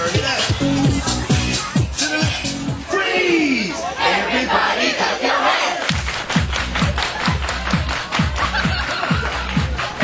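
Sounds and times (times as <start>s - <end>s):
thumping bass drum beat: 0.0s - 2.8s
dance music: 0.0s - 3.0s, 5.9s - 10.0s
crowd shouting and cheering: 0.0s - 10.0s.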